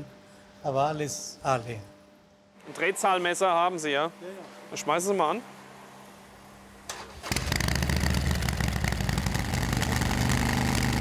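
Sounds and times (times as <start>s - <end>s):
motorcycle engine running loudly: 7.3s - 11.0s.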